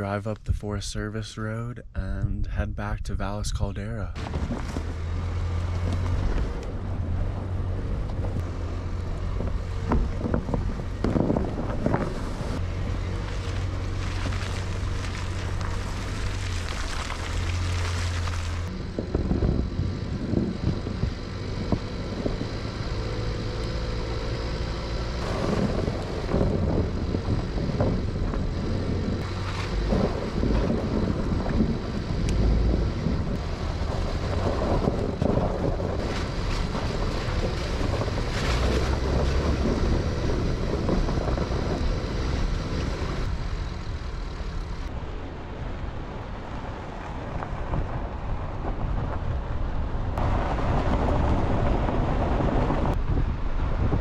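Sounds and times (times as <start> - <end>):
truck engine and tyre rumble: 0.0 - 54.0
wind buffeting microphone: 4.2 - 54.0.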